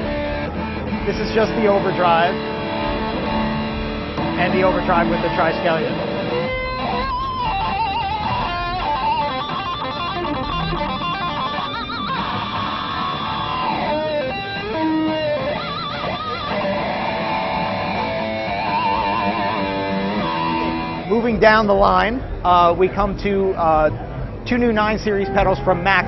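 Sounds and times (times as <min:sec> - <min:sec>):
distorted electric guitar lead: 0:00.0 - 0:22.8.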